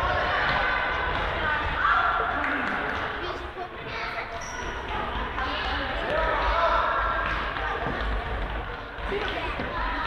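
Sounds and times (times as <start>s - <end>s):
football bouncing on hall floor: 0.0s - 10.0s.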